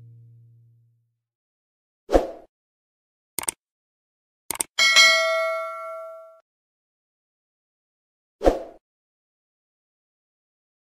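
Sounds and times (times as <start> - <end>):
bell-like ding: 4.8 - 6.4.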